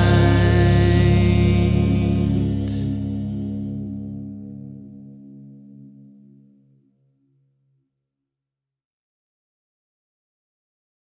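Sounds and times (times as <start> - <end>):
metal band chord ringing out: 0.0 - 6.8.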